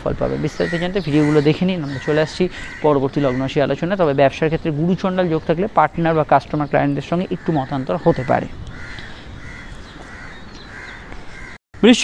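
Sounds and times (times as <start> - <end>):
crow cawing: 0.4 - 3.6, 7.4 - 11.6
man's voice: 11.8 - 12.0.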